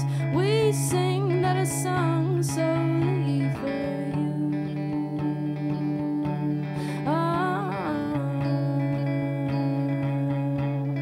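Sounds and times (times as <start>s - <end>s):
electric guitar chords: 0.0s - 11.0s
woman singing slow song: 0.0s - 11.0s.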